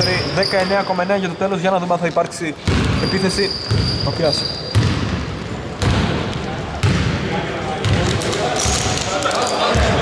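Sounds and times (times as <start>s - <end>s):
basketball bouncing on hardwood: 4.7s - 5.2s.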